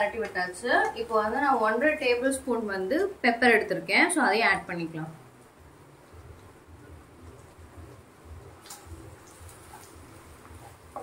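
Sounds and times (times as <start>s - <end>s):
chicken roasting with low rumble: 5.6s - 11.0s.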